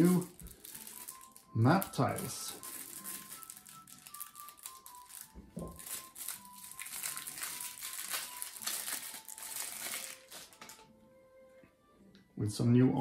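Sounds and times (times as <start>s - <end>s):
plastic shrink-wrap crinkling: 0.0s - 10.9s
soft background music: 0.0s - 13.0s.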